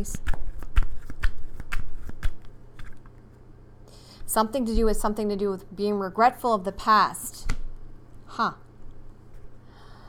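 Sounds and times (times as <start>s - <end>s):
cards being shuffled: 0.0s - 3.1s.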